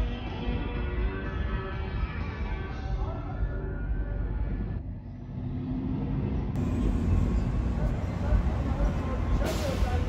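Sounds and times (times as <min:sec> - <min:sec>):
road traffic rumble: 0:03.8 - 0:10.0
vehicle engine hum: 0:03.8 - 0:10.0.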